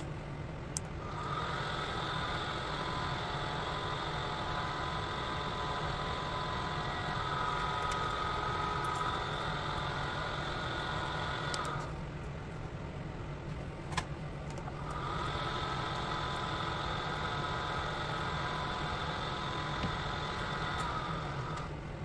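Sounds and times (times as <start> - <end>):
drill press whining: 1.0 - 12.0, 14.7 - 21.8.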